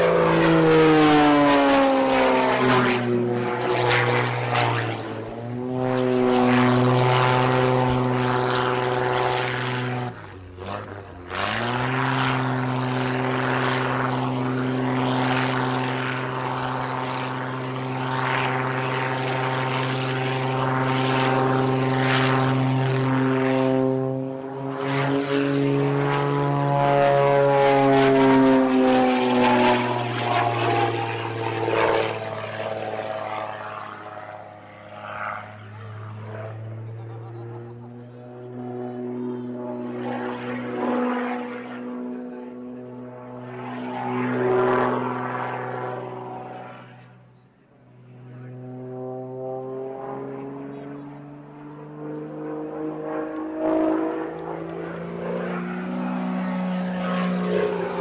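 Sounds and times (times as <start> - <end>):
propeller plane engine droning: 0.0 - 58.0.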